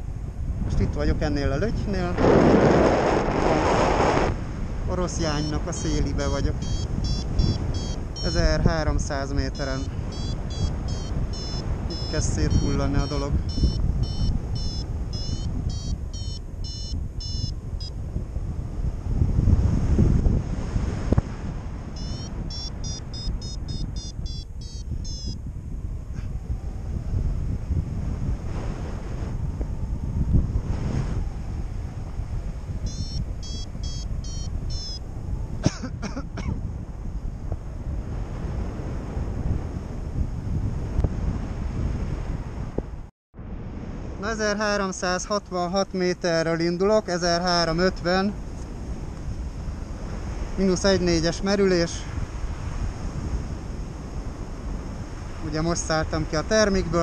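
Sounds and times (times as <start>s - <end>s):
wind rushing over microphone: 0.0s - 57.0s
variometer rapid high beeping: 5.2s - 18.0s, 22.0s - 25.4s, 32.8s - 35.1s.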